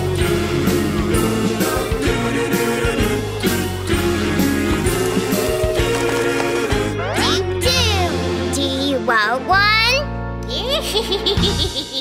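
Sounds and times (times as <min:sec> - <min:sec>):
cartoon characters giggling: 0:10.7 - 0:12.0.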